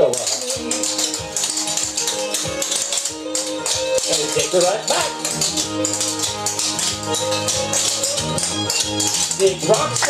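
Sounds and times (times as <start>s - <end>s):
recorded music: 0.0s - 10.0s.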